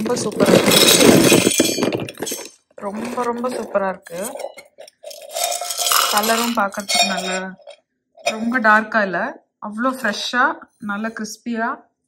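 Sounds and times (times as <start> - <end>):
dry pieces rattling on metal plate: 0.0 - 8.4.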